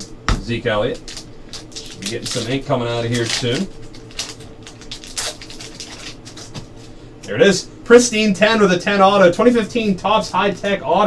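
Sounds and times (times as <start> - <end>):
steady low hum: 0.0 - 11.0
foil crinkling: 1.0 - 7.0
plastic rustling: 1.0 - 7.0.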